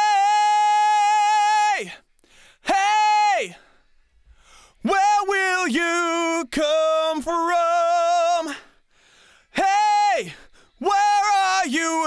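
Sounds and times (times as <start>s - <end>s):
man singing sliding notes: 4.8s - 8.6s, 9.6s - 12.0s.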